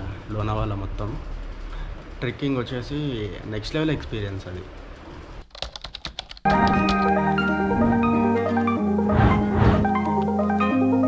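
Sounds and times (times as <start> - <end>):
keyboard typing clicks: 5.5 - 7.2.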